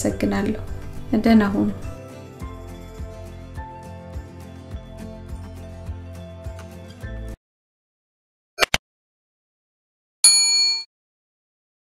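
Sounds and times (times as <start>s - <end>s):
notification bell ding: 10.2s - 10.9s.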